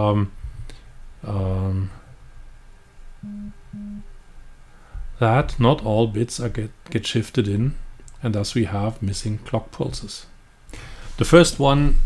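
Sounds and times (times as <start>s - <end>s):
short low electronic beeps: 3.2s - 4.1s.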